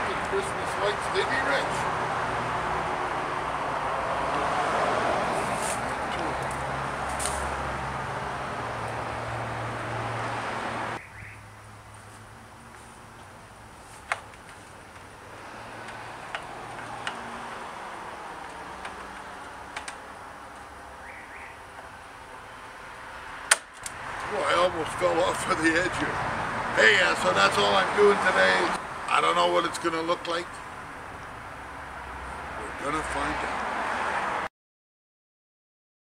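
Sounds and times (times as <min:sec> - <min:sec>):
vehicle engine and traffic: 0:00.0 - 0:34.5.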